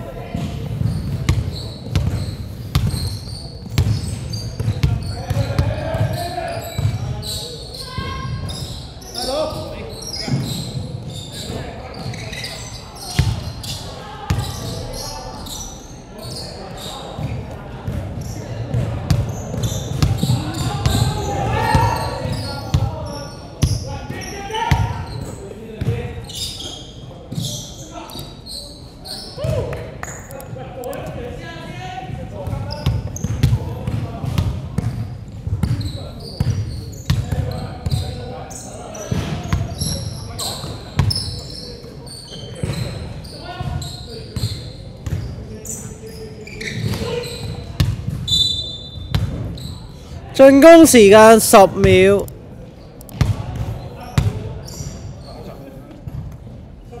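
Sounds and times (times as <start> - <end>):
players shouting: 50.4 - 52.2.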